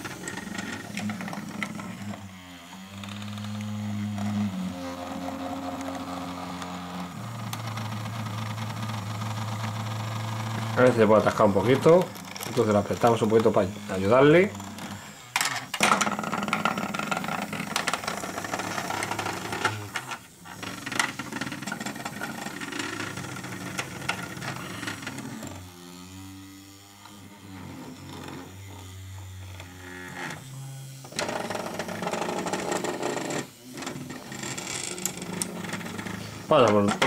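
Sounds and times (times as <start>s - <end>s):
vibration motor buzzing: 0.0s - 37.0s
toy rattling on plastic track: 10.8s - 25.5s, 31.1s - 37.0s.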